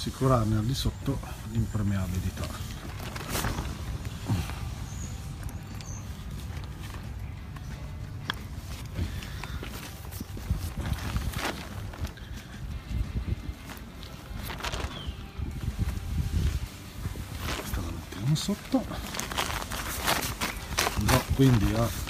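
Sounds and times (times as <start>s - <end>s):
tarp rustling and crinkling: 0.0s - 7.7s, 8.5s - 22.0s
sharp crackles: 1.6s - 7.1s, 13.6s - 15.5s, 17.2s - 22.0s.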